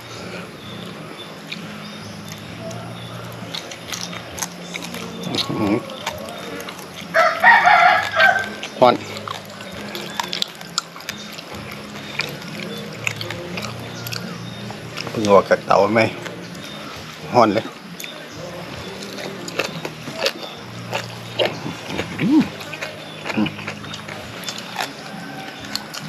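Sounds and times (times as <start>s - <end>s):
person eating: 0.0s - 15.4s, 16.2s - 26.0s
rooster crowing: 7.1s - 8.6s, 24.9s - 26.0s.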